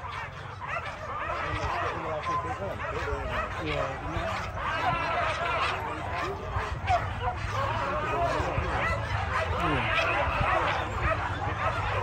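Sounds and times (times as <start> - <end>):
crowd talking: 0.0 - 12.0
dogs yelping and whining: 0.0 - 12.0.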